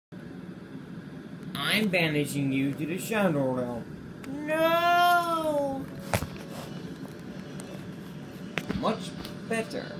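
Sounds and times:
low hum with hiss: 0:00.1 - 0:09.9.

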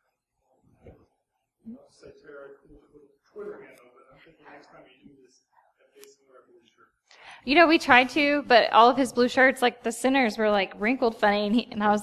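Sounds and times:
faint speech: 0:01.7 - 0:06.9.

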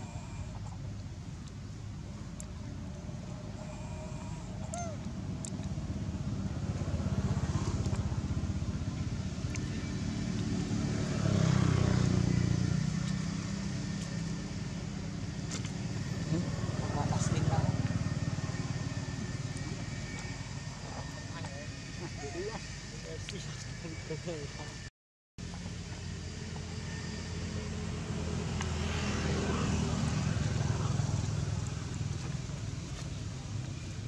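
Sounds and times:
passing vehicle engines rumbling: 0:00.0 - 0:34.0.

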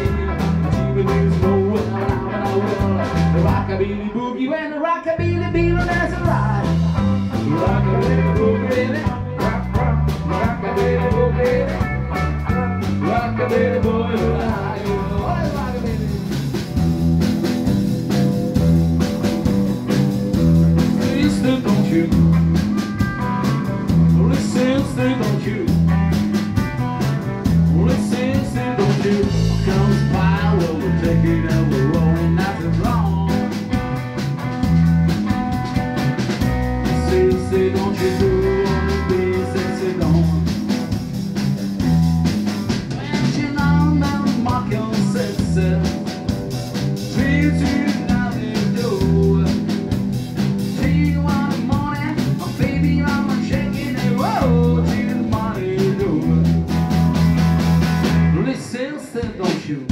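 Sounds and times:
drum kit: 0:00.0 - 0:04.1, 0:05.3 - 0:59.9
pulsing bass line: 0:00.0 - 0:04.1, 0:05.2 - 0:58.5
electric guitars: 0:00.0 - 0:04.2, 0:05.4 - 0:59.4.

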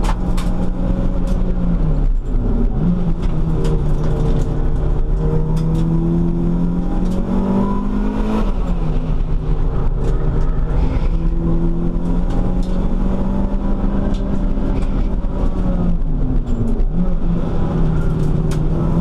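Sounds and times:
race car engine under load: 0:00.0 - 0:19.0
road and tyre noise: 0:00.0 - 0:19.0.

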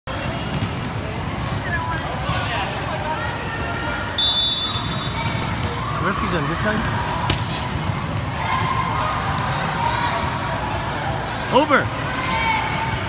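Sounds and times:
ball bounces and thuds: 0:00.1 - 0:02.6
referee's whistle: 0:04.1 - 0:05.4.

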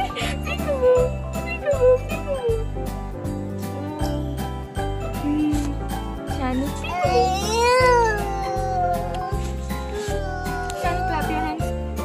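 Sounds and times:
young child's drawn-out vocal: 0:06.9 - 0:11.5.

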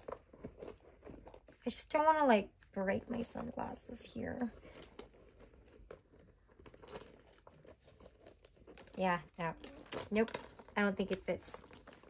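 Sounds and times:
fabric bag rustling: 0:04.0 - 0:12.0.

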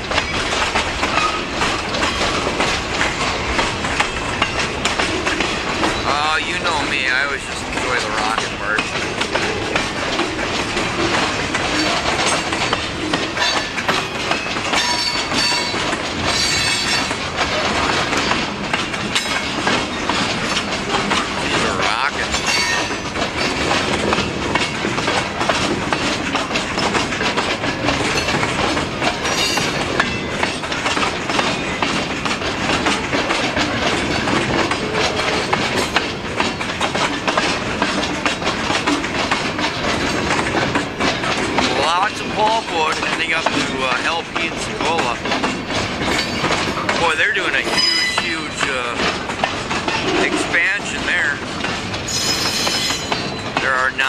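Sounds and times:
train wheels clattering over rail joints: 0:00.0 - 0:54.0
high-pitched wheel squeals: 0:52.1 - 0:53.4.

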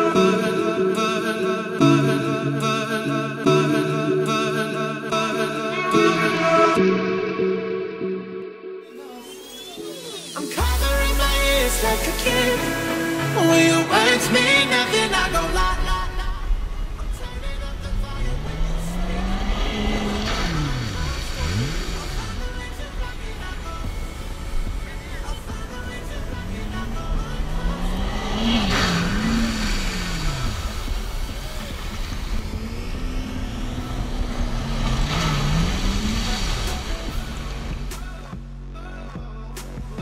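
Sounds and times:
quad bike engines revving past: 0:17.8 - 0:38.0.

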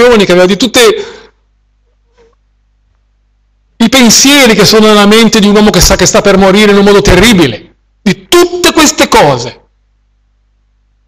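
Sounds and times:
man speaking with echo: 0:00.0 - 0:01.3, 0:03.8 - 0:09.7.

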